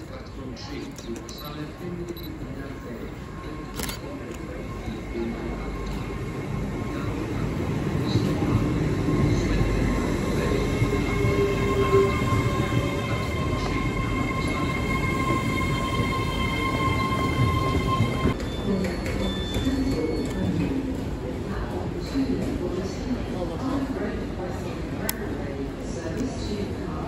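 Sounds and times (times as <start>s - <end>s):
high-pitched train whine: 3.2s - 20.2s.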